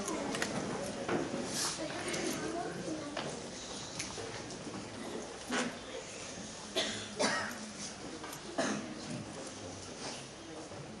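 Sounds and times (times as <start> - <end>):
low murmur of hall: 0.0 - 11.0
people coughing: 6.7 - 7.7, 8.5 - 9.0.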